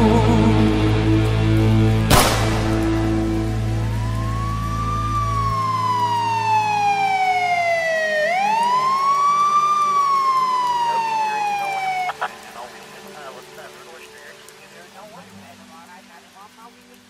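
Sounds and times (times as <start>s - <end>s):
song music: 0.0s - 14.4s
siren wailing: 2.6s - 12.8s.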